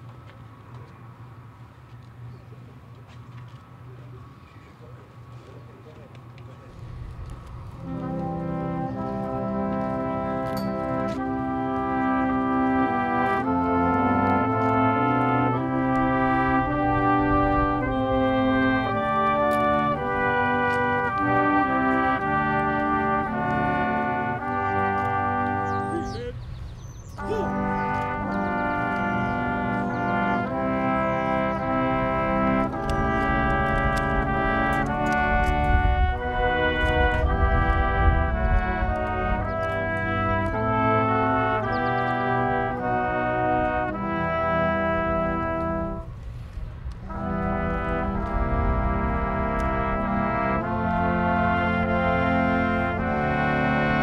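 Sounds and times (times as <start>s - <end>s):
brass band playing held chords: 6.7s - 26.3s, 27.1s - 54.0s.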